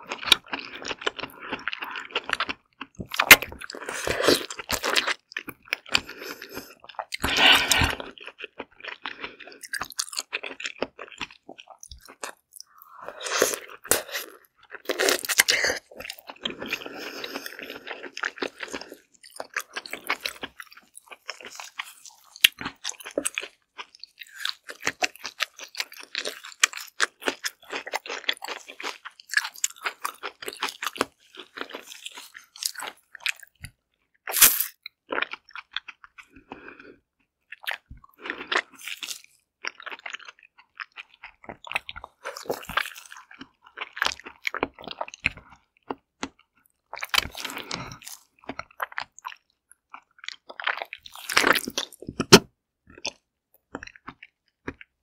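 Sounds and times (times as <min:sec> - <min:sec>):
biting and chewing zucchini: 0:00.0 - 0:55.0.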